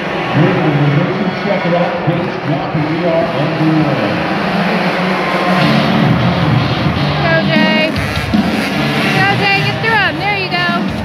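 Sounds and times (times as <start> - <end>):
motocross bikes revving: 0.0 - 11.0.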